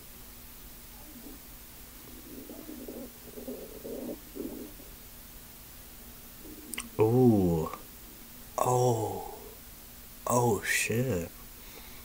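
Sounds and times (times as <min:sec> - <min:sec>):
faint steady hum: 0:00.0 - 0:12.0
man vocalizing wordlessly: 0:06.7 - 0:07.8, 0:08.6 - 0:09.6, 0:10.3 - 0:11.3.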